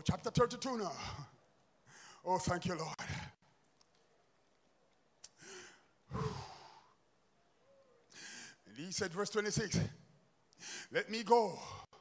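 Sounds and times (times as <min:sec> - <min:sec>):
man breathing: 0:01.0 - 0:02.3, 0:05.3 - 0:07.0, 0:08.1 - 0:08.7, 0:10.5 - 0:11.0.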